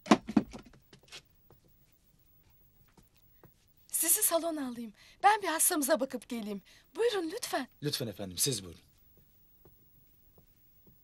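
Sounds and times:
footsteps on hard floor: 0.1s - 3.8s, 9.1s - 11.0s.

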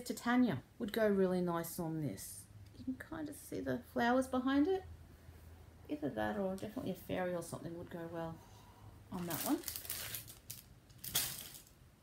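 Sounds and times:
fabric rustling: 9.1s - 11.8s.

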